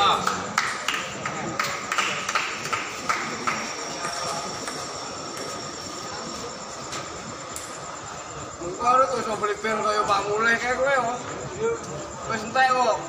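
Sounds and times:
murmur of large hall: 0.0 - 13.0.

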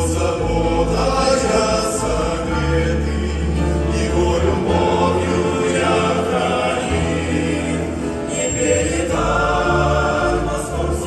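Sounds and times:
men's choir singing: 0.0 - 11.0.

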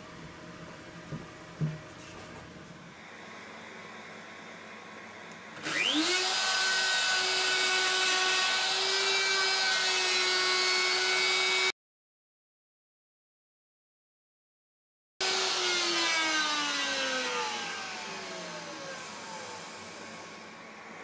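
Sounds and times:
electric router whining: 3.0 - 11.7, 15.2 - 21.0.

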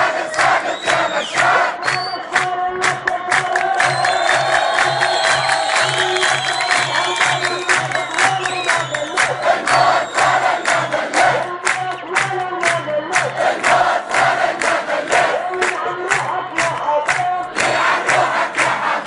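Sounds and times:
crowd chanting in unison: 0.0 - 19.0
rhythmic clapping: 0.0 - 19.0.

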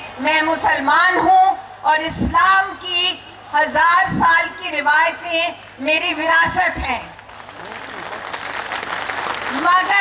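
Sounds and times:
audience applause: 7.3 - 10.0.

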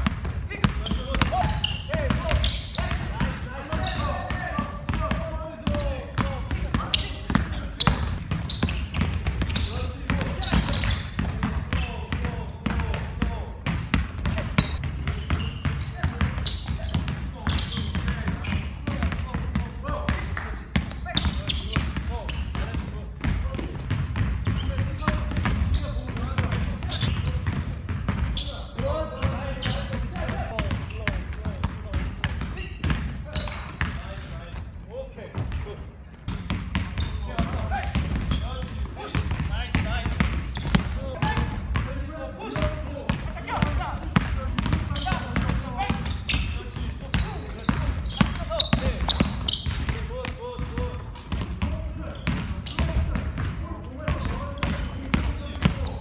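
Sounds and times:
basketballs bouncing on wooden floor: 0.0 - 56.0.

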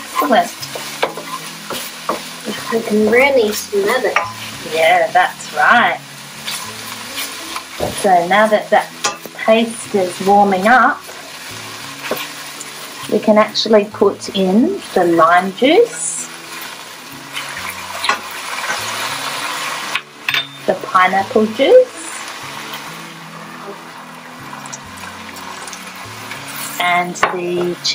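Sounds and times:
spatula scraping a pan: 0.0 - 4.8, 5.7 - 9.5
onions sizzling in a pan: 0.0 - 27.9.

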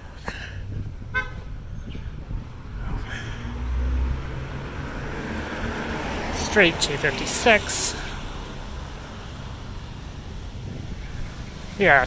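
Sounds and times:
street traffic noise: 0.0 - 12.0
vehicle engine rumble: 0.0 - 12.0
vehicle horn toot: 1.1 - 1.4.

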